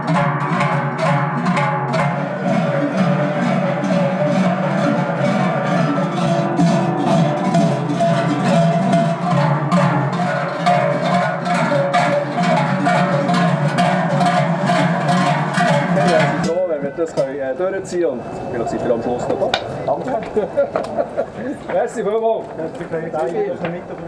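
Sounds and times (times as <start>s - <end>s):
large cowbells clanging: 0.0s - 24.0s.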